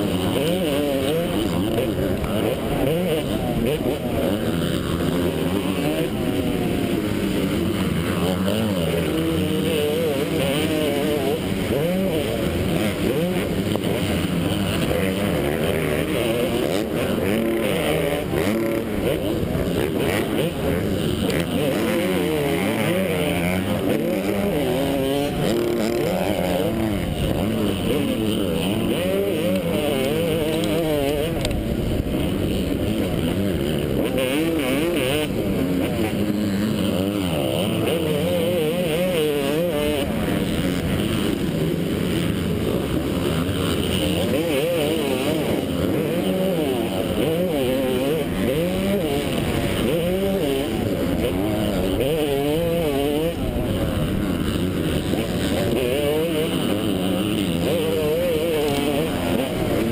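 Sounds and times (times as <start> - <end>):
motocross engine revving: 0.0 - 59.9.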